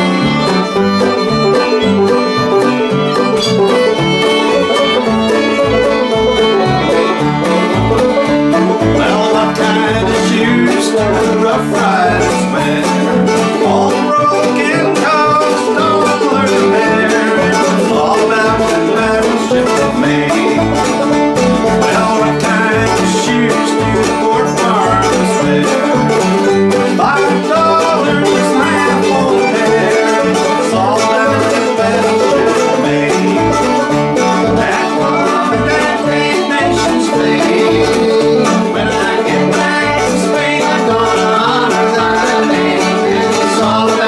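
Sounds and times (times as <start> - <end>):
acoustic guitar: 0.0 - 44.0
banjo: 0.0 - 44.0
fiddle: 0.0 - 44.0
upright bass: 0.0 - 44.0.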